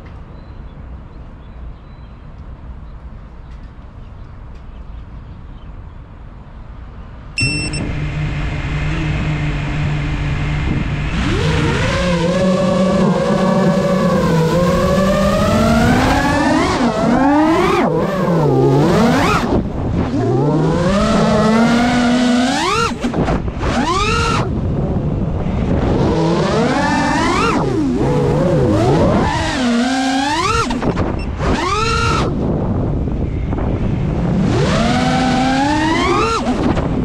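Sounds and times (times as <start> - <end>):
short high beep: 7.4 - 7.9
drone motors whining: 7.4 - 24.6, 25.5 - 32.5, 33.8 - 37.0.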